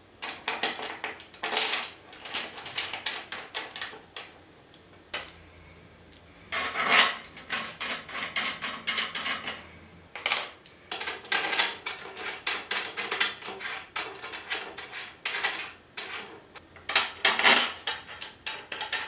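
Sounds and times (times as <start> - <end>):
screws and nuts clinking on metal: 10.2 - 19.0.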